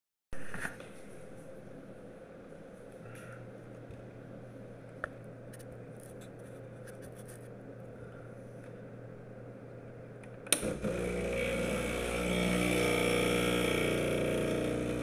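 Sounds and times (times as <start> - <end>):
espresso machine humming: 10.6 - 15.0.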